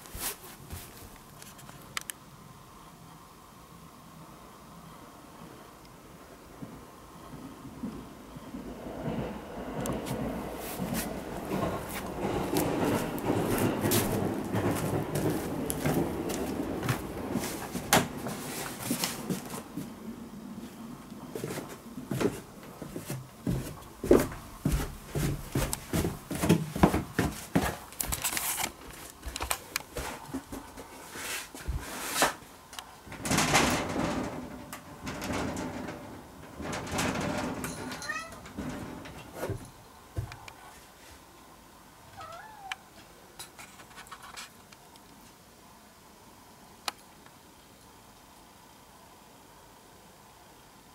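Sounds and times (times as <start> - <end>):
knocks and rustling thuds: 10.0 - 19.9, 21.4 - 31.0, 33.1 - 40.4
cat meowing: 38.0 - 38.4, 42.1 - 42.9.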